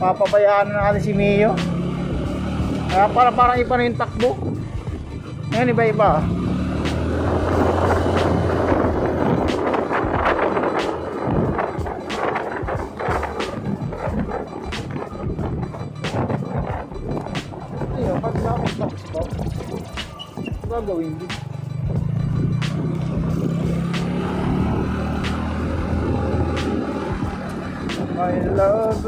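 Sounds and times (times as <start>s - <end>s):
background music: 0.0s - 29.0s
motorcycle engine hum: 0.0s - 29.0s
wind buffeting microphone: 0.8s - 21.0s, 21.7s - 29.0s.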